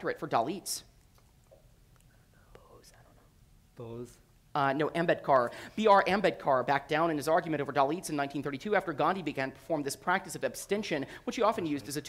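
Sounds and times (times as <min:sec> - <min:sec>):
people whispering: 0:02.1 - 0:03.3.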